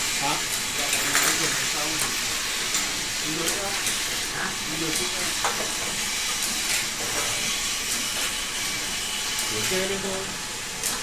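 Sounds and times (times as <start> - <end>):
machine hiss: 0.0 - 11.0.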